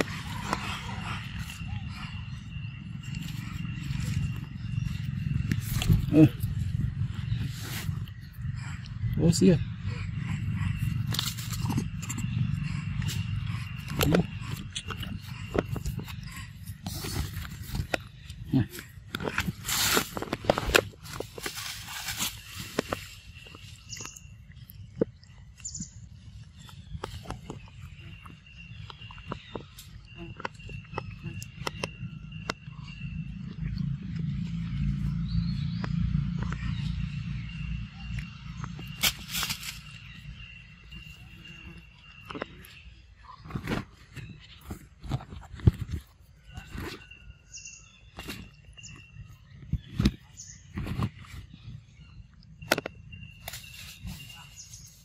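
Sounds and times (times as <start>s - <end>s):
monkey chewing fruit: 0.0s - 21.6s
steady low rumble: 0.0s - 42.2s.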